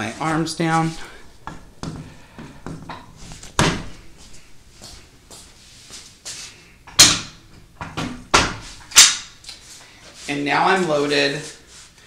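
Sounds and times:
magnets snapping into place: 8.8 - 9.3.

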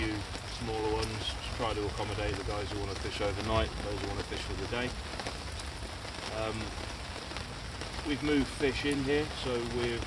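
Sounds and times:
rain pattering on umbrella: 0.0 - 10.0
steady rain falling: 0.0 - 10.0.

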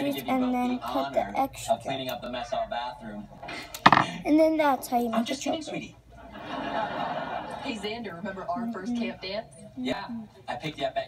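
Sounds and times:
sharp knock: 3.8 - 4.2.

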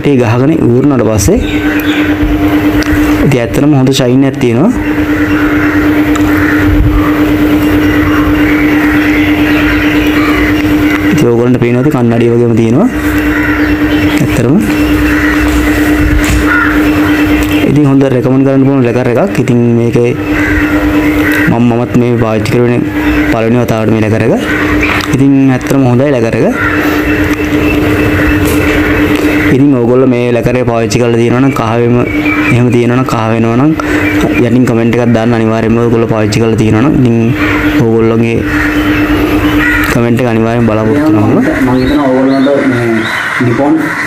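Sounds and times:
machine droning hum: 0.0 - 44.0.

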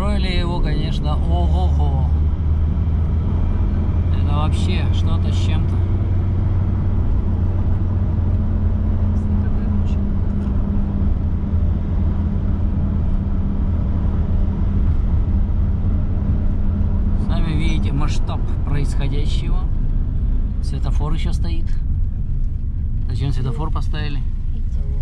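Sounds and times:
car engine hum: 0.0 - 25.0.

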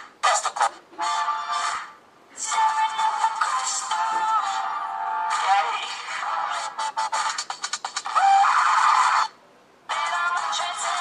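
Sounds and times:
harsh scream: 8.1 - 9.3.

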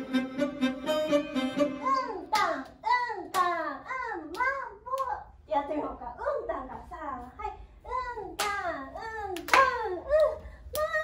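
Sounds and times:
handclaps: 9.4 - 10.9.

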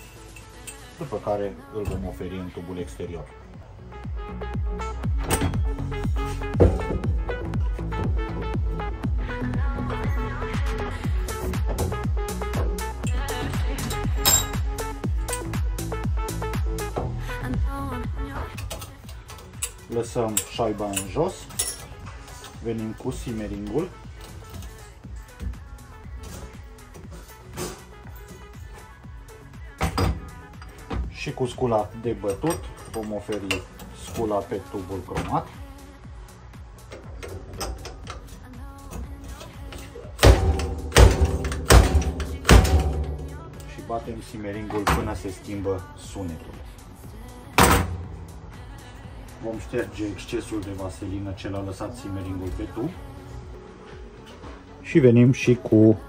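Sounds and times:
light metallic clicks and clinks: 0.0 - 0.9, 18.5 - 22.6
background music: 0.0 - 56.0
seal driver striking metal: 40.2 - 43.6, 47.6 - 48.2.

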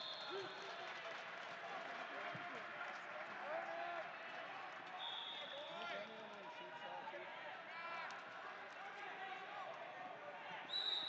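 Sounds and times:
hubbub of voices: 0.0 - 11.0
loud high whistle: 10.7 - 11.0.

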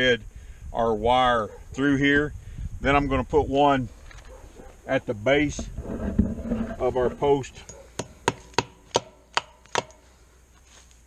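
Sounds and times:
hammer striking a staple: 8.0 - 10.0.

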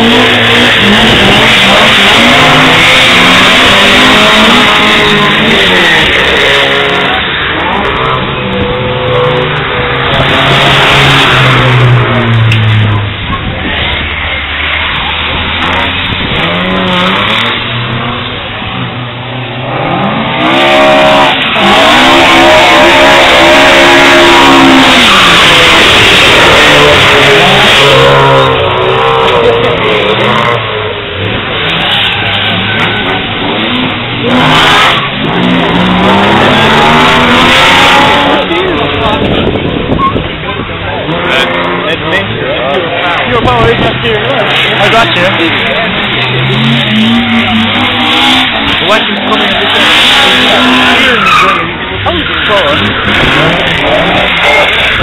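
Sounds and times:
car engines revving: 0.0 - 55.0.

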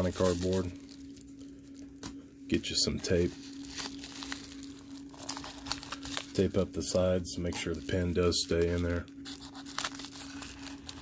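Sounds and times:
bubble mailer crinkling: 0.0 - 11.0.

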